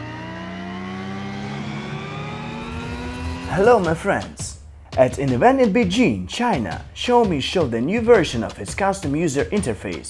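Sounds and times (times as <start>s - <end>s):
rising synth drone: 0.0s - 4.0s.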